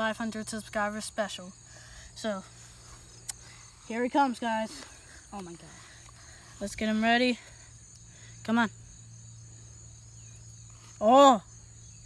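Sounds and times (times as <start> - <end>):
high-pitched insect trilling: 0.0 - 12.0.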